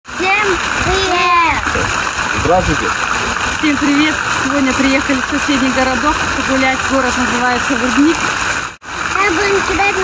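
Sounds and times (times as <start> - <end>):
fountain water splashing: 0.1 - 10.0.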